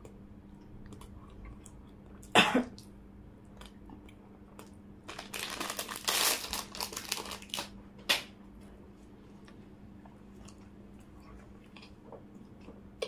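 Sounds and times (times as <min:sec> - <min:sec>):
person coughing: 0:02.3 - 0:02.8.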